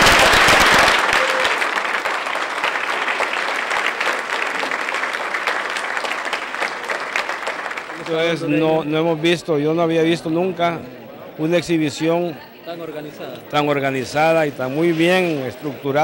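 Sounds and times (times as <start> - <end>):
crowd applauding: 0.0 - 9.4.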